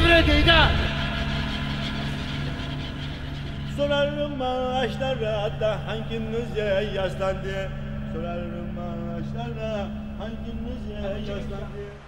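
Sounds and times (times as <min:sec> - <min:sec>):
boat engine drone: 0:00.0 - 0:12.0.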